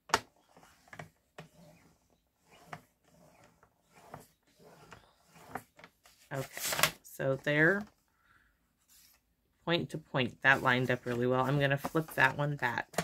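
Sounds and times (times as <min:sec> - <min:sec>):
cardstock rustling and tapping: 0:10.6 - 0:13.0.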